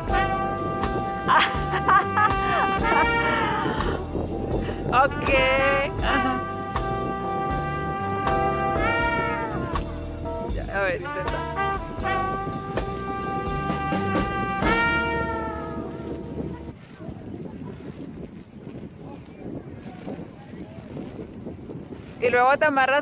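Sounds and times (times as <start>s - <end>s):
wind instrument melody music: 0.0s - 16.8s.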